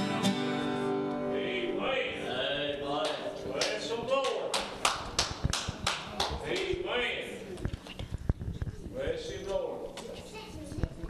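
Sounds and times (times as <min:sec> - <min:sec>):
hand claps: 0:03.0 - 0:06.8.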